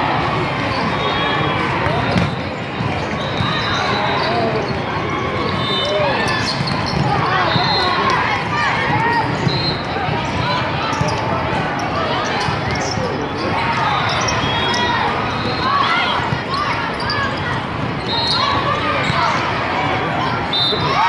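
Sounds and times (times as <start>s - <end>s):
voices calling out and chattering: 0.0s - 21.0s
shoes squeaking on court: 5.8s - 7.7s.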